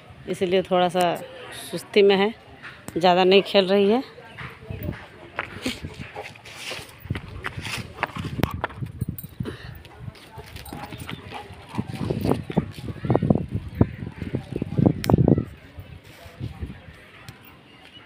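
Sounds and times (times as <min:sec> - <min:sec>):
dog claws tapping on concrete: 0:07.0 - 0:09.4.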